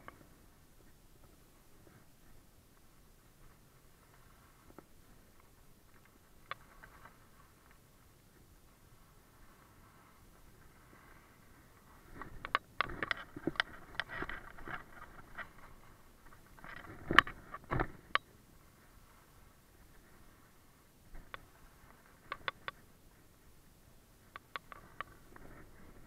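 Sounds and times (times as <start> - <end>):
faint steady hiss: 0.0 - 26.0
sharp ski clacks: 24.3 - 25.6.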